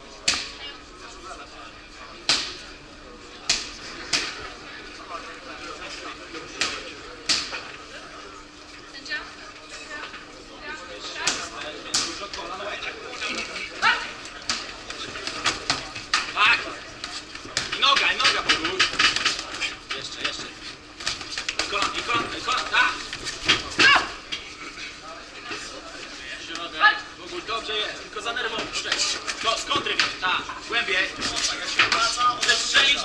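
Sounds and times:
people shouting in echoing hall: 0:23.7 - 0:24.2.

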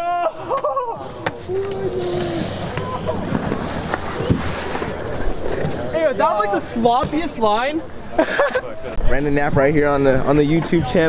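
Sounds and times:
bike tires rolling on concrete: 0:00.5 - 0:07.8.

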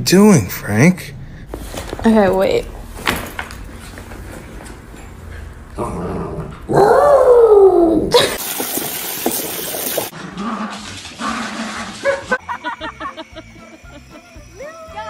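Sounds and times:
hose water jetting into pool: 0:08.2 - 0:10.1.

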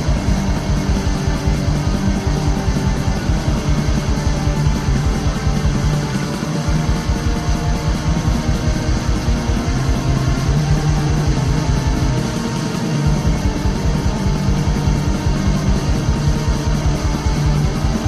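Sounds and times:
distorted electric guitars: 0:00.0 - 0:18.0
fast steady drumming: 0:00.0 - 0:18.0.

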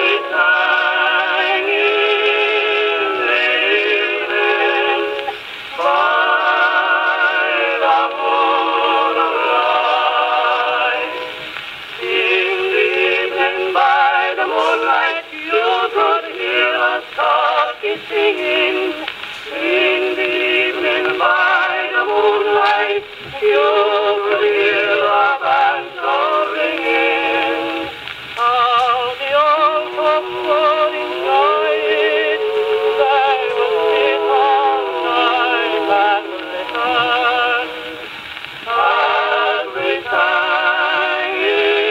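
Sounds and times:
phonograph record singing: 0:00.0 - 0:41.9.

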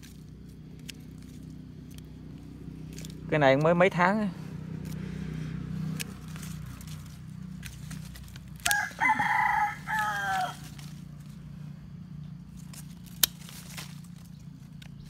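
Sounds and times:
pruning shears snip: 0:00.0 - 0:04.0, 0:04.8 - 0:11.5, 0:12.3 - 0:15.0
rooster crowing: 0:08.6 - 0:11.0.

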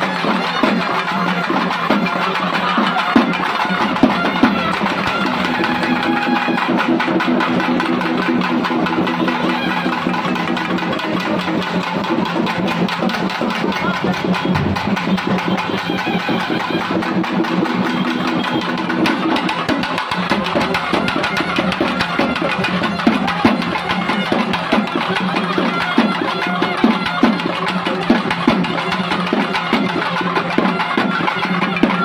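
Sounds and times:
drum band playing fast: 0:00.0 - 0:32.0.

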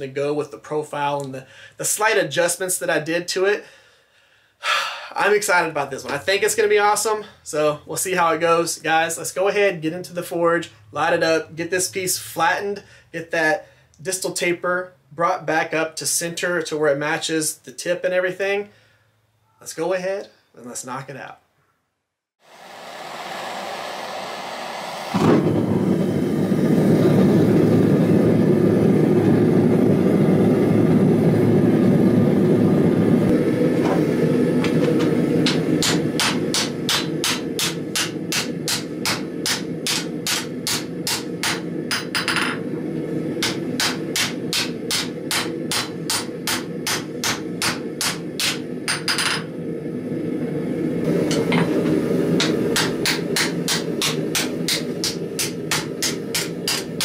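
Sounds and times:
gas forge burner rushing: 0:22.4 - 0:57.0
hammer striking steel on anvil: 0:35.0 - 0:42.6, 0:43.4 - 0:49.5, 0:51.3 - 0:57.0.

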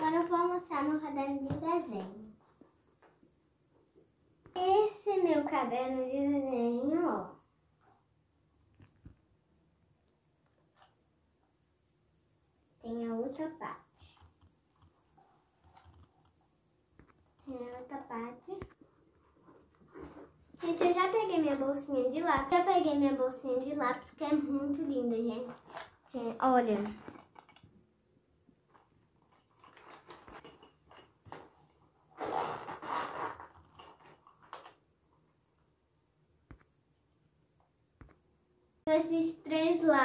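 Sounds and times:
pencil case rustling: 0:24.6 - 0:27.6, 0:28.7 - 0:34.8
pens and pencils shifting: 0:24.8 - 0:27.7, 0:28.7 - 0:34.8
zipper being pulled: 0:32.1 - 0:34.3.

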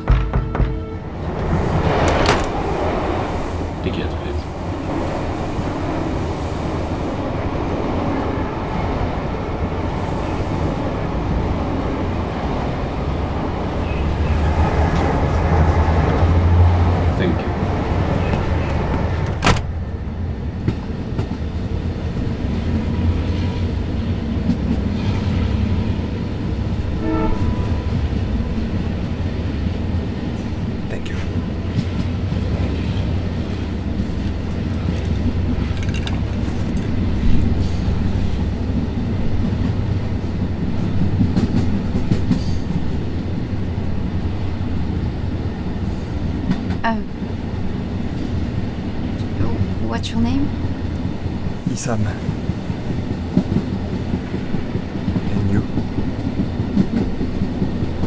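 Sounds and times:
clicks and knocks: 0:00.0 - 0:00.8
train rumbling: 0:00.0 - 0:58.0.

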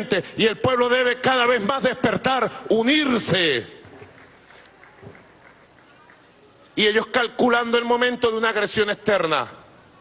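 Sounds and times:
faint steady background noise: 0:00.0 - 0:10.0.

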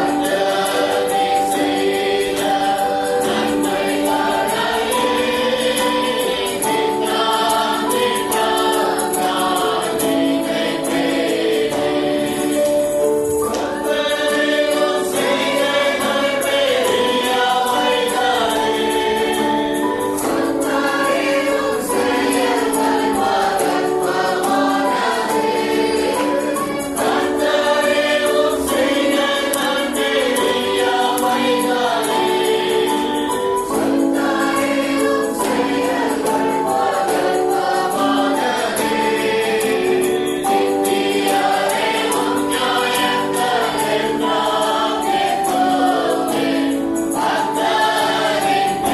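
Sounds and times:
choir singing in harmony: 0:00.0 - 0:48.9
instrumental backing: 0:00.0 - 0:48.9
shaken percussion: 0:00.0 - 0:48.9.

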